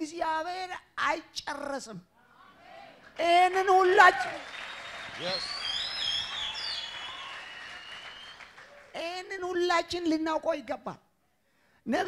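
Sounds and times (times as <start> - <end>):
applause: 3.0 - 9.1
crowd noise: 4.4 - 7.9
gliding high whistles: 4.4 - 8.6.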